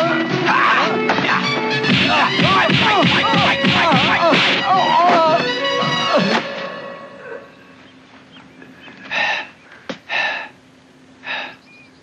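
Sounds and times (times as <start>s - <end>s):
man breathing hard: 8.6s - 10.6s, 11.2s - 11.6s.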